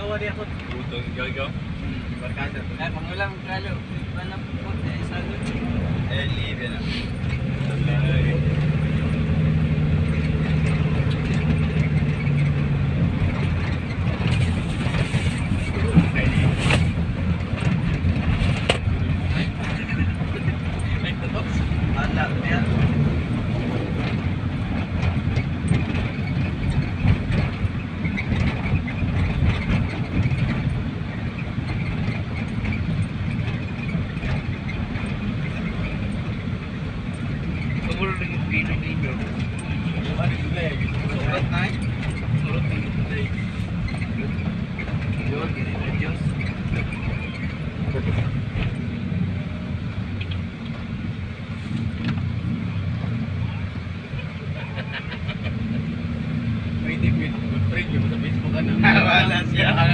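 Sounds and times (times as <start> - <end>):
road and engine rumble: 0.0 - 59.9
voices talking: 17.6 - 27.6, 32.0 - 49.6, 52.7 - 59.9.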